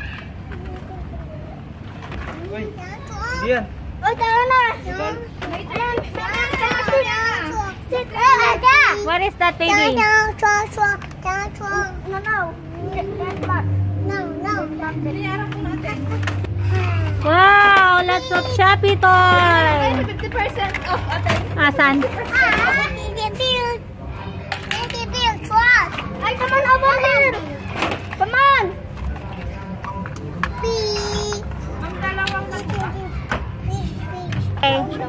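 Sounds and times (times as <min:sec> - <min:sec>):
young children calling and chattering: 0:00.0 - 0:35.0.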